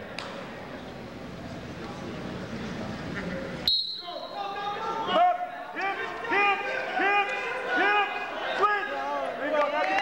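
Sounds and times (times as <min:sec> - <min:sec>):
murmur of crowd: 0:00.0 - 0:10.0
referee's whistle blast: 0:03.6 - 0:04.5.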